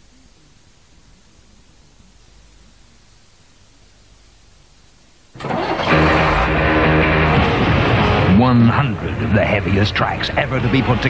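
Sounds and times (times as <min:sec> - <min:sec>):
low hiss: 0:00.0 - 0:11.0
heavy rock music with electric guitar: 0:05.4 - 0:11.0.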